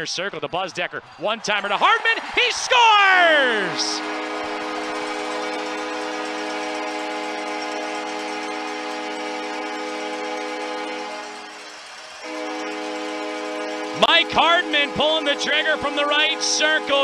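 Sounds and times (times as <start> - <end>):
crowd noise: 0.0 - 9.6
goal horn blast: 3.0 - 11.5, 12.2 - 17.0.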